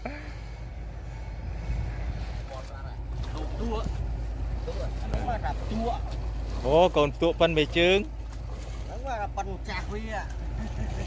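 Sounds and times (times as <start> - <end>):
muddy water sloshing: 0.0 - 11.0
wind rumbling on microphone: 0.0 - 11.0.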